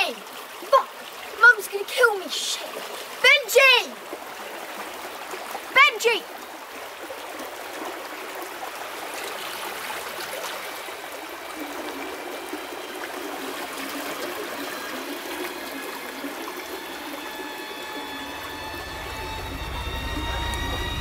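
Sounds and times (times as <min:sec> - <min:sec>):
river water rushing: 0:00.0 - 0:21.0
low drone: 0:11.1 - 0:21.0
high held tones: 0:11.6 - 0:21.0.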